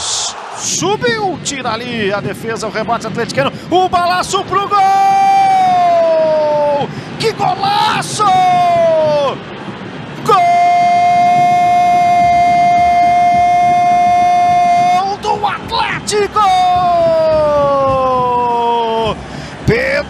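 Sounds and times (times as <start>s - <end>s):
commentator shouting: 3.8s - 9.4s, 10.2s - 20.0s
commentator speaking: 6.5s - 9.4s, 15.0s - 20.0s.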